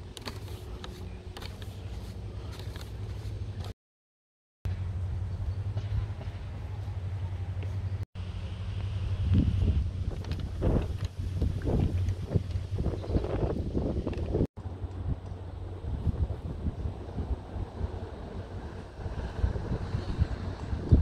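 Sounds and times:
wind buffeting microphone: 9.0s - 21.0s.

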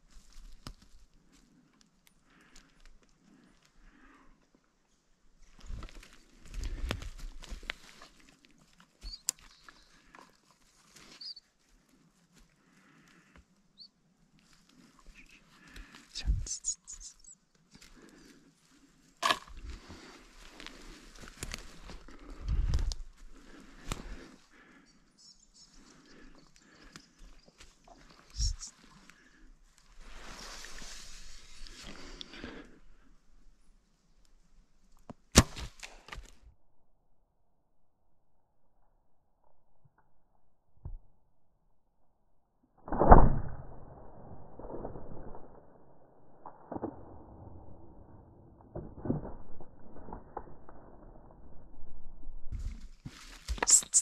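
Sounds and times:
footsteps on leaves and twigs: 5.6s - 12.5s, 19.2s - 24.4s, 52.6s - 54.0s.

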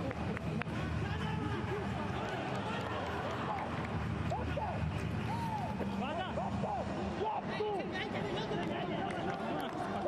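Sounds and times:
players shouting: 1.0s - 10.0s.

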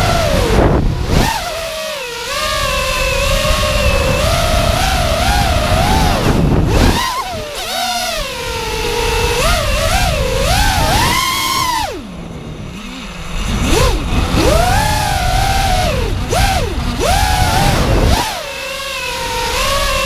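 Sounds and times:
quadcopter motors whining: 0.0s - 20.0s
wind rumbling on microphone: 0.0s - 20.0s.

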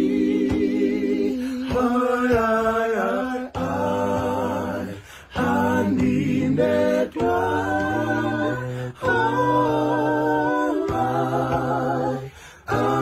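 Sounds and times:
voices singing a cappella: 0.0s - 13.0s.

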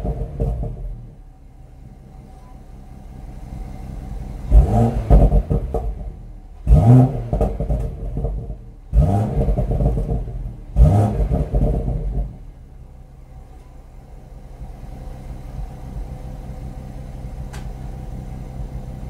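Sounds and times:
car engine revving and idling: 0.0s - 19.0s.

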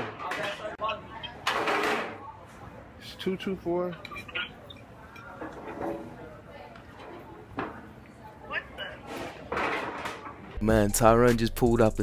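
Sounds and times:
room chatter: 0.0s - 11.1s.

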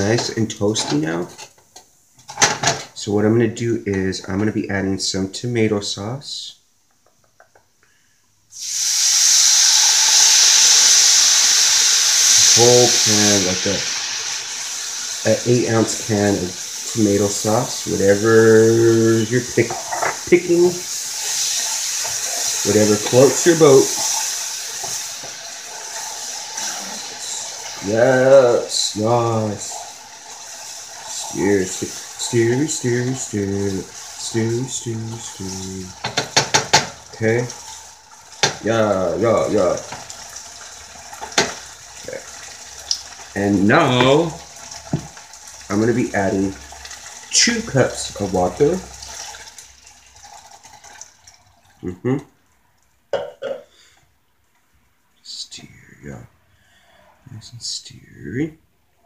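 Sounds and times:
faint room noise: 0.0s - 59.0s
sauce sizzling in skillet: 8.5s - 51.6s.

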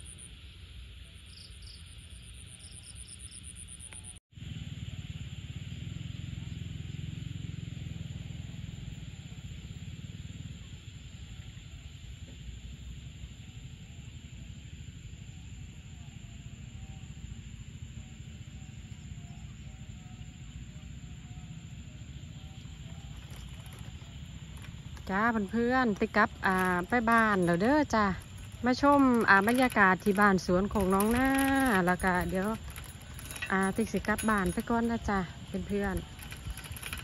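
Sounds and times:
high insect chorus: 0.0s - 37.0s.

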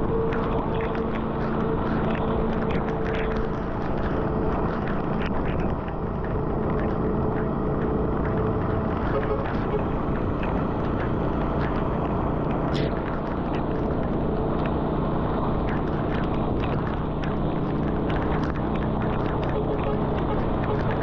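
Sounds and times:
vehicle road rumble: 0.0s - 21.0s
raindrops ticking: 0.1s - 21.0s.

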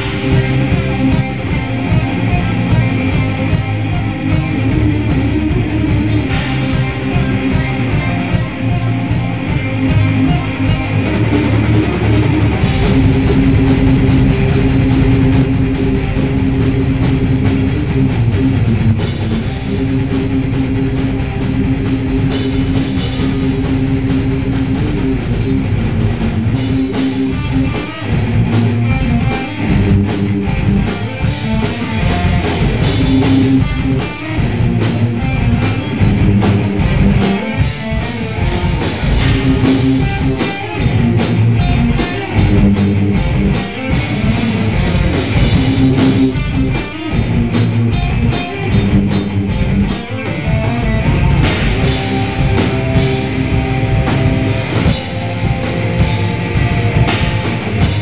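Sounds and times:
drum kit with cymbal hits: 0.0s - 58.0s
electric guitar and bass: 0.0s - 58.0s.

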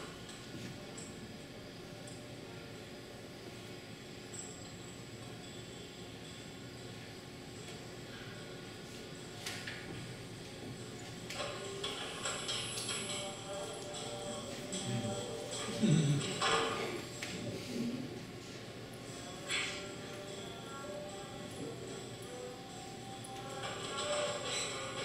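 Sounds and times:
faint steady hum: 0.0s - 25.0s
soft music over loudspeakers: 10.8s - 25.0s.

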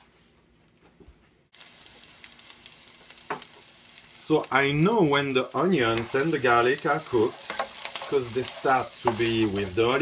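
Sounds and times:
onions frying in a pan: 1.5s - 10.0s.

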